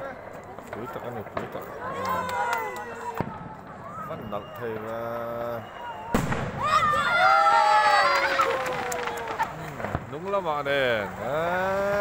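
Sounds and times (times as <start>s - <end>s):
faint firework pops: 0.5s - 6.9s, 8.2s - 10.4s
firework bang: 3.1s - 4.1s, 5.4s - 10.4s
crowd cheering and whooping: 5.7s - 9.7s.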